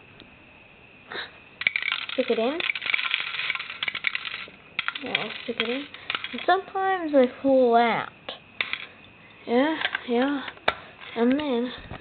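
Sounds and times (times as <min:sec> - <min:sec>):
plastic pieces dropping into plastic silo: 0:01.6 - 0:06.7.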